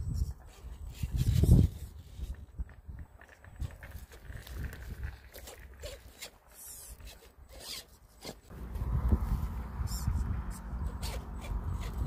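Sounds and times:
electric motor and gear whine: 0:07.7 - 0:12.0.

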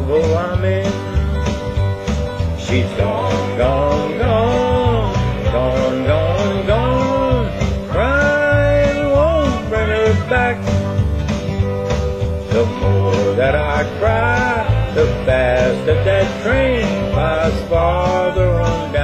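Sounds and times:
man singing country song: 0:00.0 - 0:11.4, 0:12.3 - 0:19.0
country backing track: 0:00.0 - 0:19.0.

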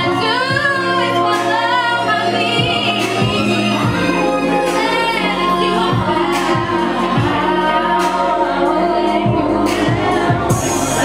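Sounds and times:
backing music with bass beat: 0:00.0 - 0:11.0
woman singing into microphone: 0:00.0 - 0:11.0.

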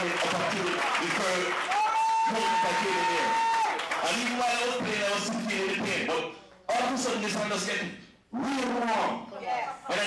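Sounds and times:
man speaking: 0:04.0 - 0:09.3.

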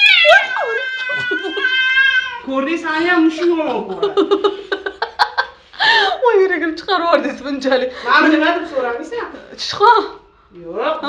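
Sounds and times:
cat yowling: 0:00.0 - 0:02.5.

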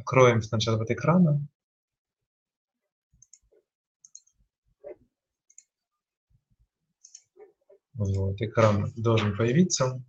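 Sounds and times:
computer mouse clicks: 0:03.2 - 0:05.8, 0:07.0 - 0:08.3.

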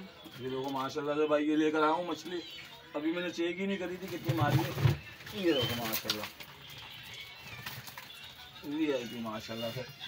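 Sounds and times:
plastic bag rustling: 0:03.9 - 0:10.0
fish slapping on plastic: 0:04.1 - 0:08.8.

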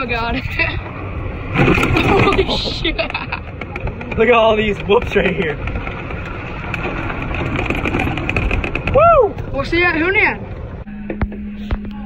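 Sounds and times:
wind buffeting microphone: 0:00.0 - 0:10.9
golf cart tyre and drive noise: 0:00.0 - 0:12.0.

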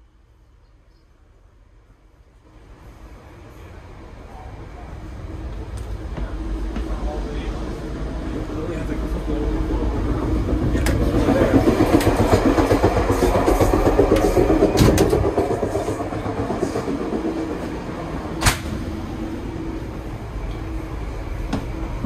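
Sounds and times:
train rumble and rattle: 0:00.0 - 0:22.0.

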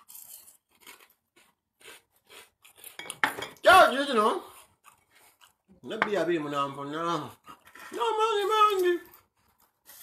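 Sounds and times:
person biting and chewing food: 0:00.0 - 0:03.2, 0:04.4 - 0:06.0
loud voice: 0:07.9 - 0:09.0.

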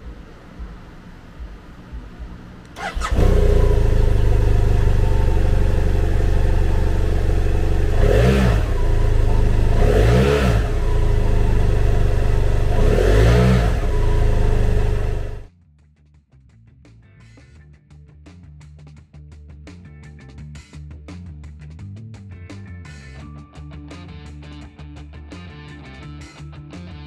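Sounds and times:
motorcycle engine starting and idling: 0:02.6 - 0:15.5.

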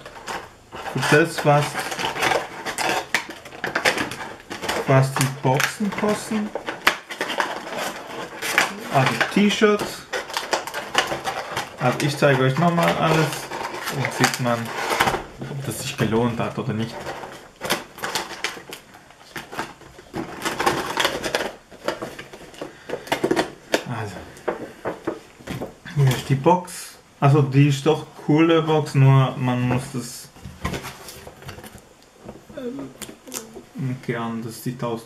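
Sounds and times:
plastic packaging crinkling: 0:00.0 - 0:24.0.

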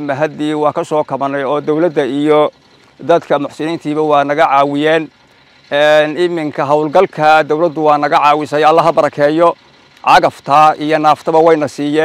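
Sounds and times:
man talking: 0:00.0 - 0:05.1, 0:05.7 - 0:12.0.

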